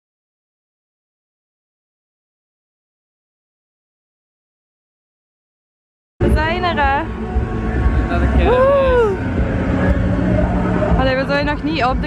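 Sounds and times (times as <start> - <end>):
steady hum: 6.2 - 12.0.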